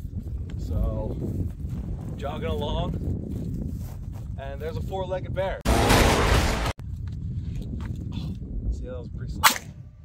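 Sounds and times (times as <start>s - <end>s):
wind noise on microphone: 0.0s - 5.7s, 6.7s - 10.0s
wooden board smashing: 5.7s - 6.8s.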